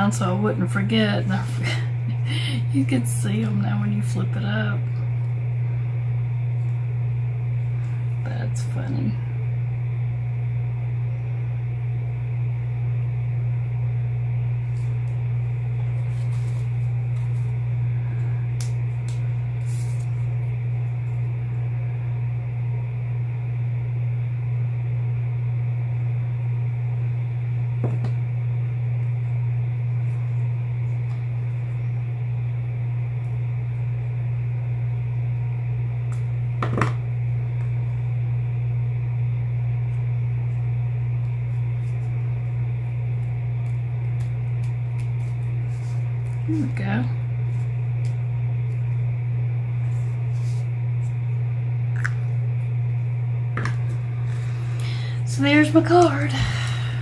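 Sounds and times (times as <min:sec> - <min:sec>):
steady low hum: 0:00.0 - 0:57.0.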